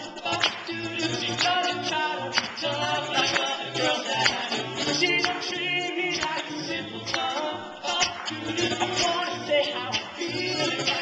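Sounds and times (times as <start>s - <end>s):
a cappella vocal harmonies: 0.0s - 11.0s
vocal percussion snare hits: 0.0s - 11.0s.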